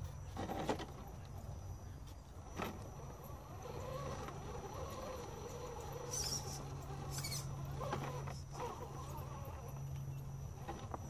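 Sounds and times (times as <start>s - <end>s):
toy motor humming: 3.0s - 11.0s
high-pitched squeaks: 6.0s - 9.8s.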